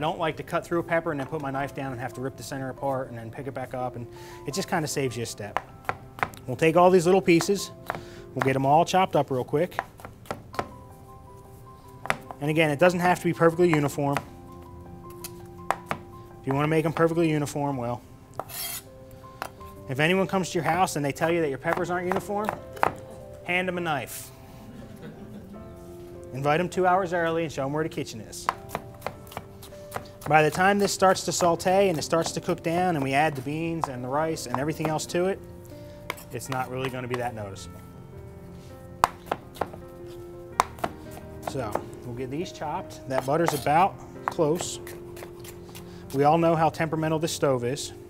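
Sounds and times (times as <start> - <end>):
knife chopping on plastic board: 5.5 - 6.4, 12.0 - 12.4, 15.7 - 16.1, 21.7 - 23.0, 28.5 - 35.0, 36.1 - 37.2, 39.0 - 39.8, 40.6 - 41.9, 43.1 - 45.8
knife blade scraping: 18.4 - 18.9
knife tapping cutting board: 21.7 - 23.0, 33.8 - 35.0, 43.2 - 43.7.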